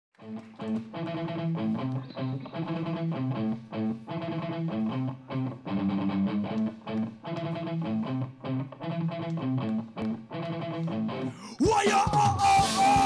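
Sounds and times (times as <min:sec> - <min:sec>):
electric guitars strumming riff: 0:00.2 - 0:13.0
rock band playing: 0:00.7 - 0:13.0.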